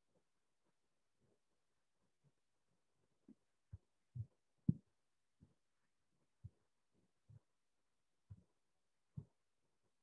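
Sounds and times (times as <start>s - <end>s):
soft dull thumps: 3.7s - 5.6s.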